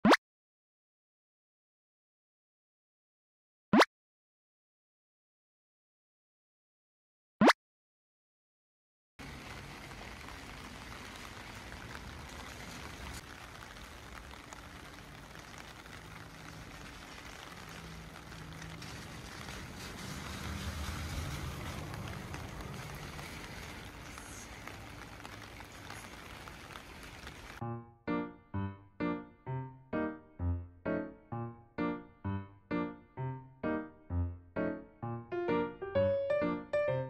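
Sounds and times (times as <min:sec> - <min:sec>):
passing traffic hum: 0:09.2 - 0:27.6.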